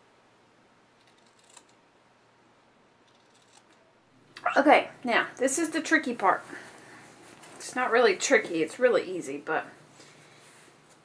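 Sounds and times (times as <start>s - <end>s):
scissors snipping: 1.0s - 1.8s.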